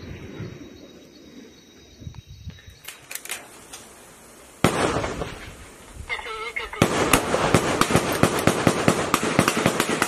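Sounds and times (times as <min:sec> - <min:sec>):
rifle gunshots: 0:04.6 - 0:05.5, 0:06.8 - 0:10.0.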